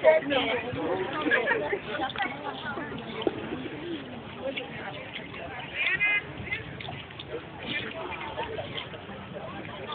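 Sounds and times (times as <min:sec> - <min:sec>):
distant people talking: 0:00.0 - 0:09.9.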